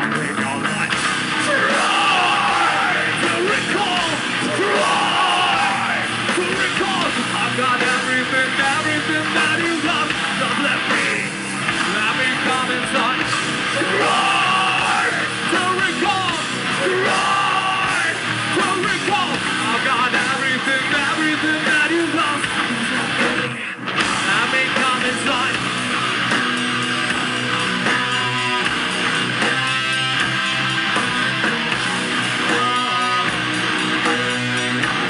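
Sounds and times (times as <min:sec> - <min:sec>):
distorted electric guitar riff: 0:00.0 - 0:35.0
heavy metal band playing: 0:00.0 - 0:35.0
sung vocals: 0:01.4 - 0:25.8, 0:32.4 - 0:33.7.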